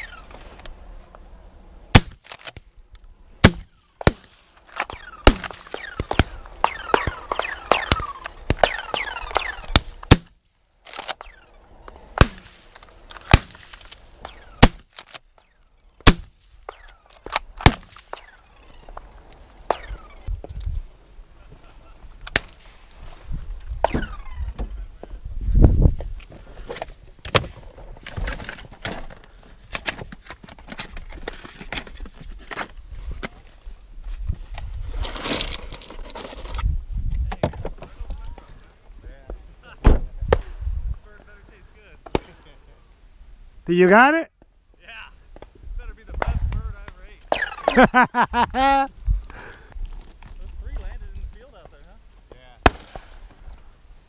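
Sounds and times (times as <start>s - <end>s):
shotgun blasts: 1.9s - 2.2s, 3.4s - 10.3s, 12.1s - 14.9s, 16.0s - 18.4s, 52.6s - 53.3s.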